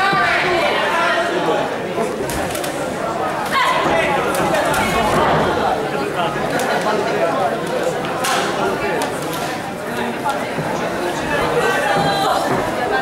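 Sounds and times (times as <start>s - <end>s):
people shouting and chattering: 0.0s - 13.0s.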